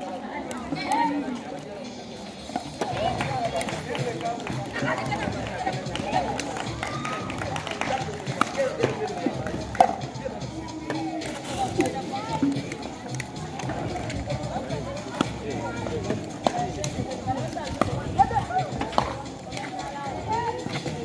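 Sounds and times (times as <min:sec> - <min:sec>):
background music: 0:00.0 - 0:21.0
onlookers' voices: 0:00.0 - 0:21.0.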